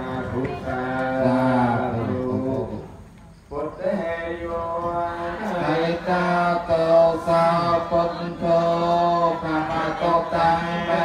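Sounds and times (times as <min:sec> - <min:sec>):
man chanting in monotone: 0:00.0 - 0:11.0.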